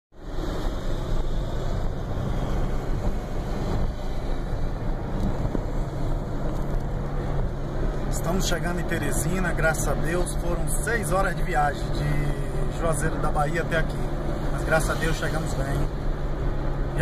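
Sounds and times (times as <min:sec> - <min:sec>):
car engine and road noise: 0:00.1 - 0:17.0.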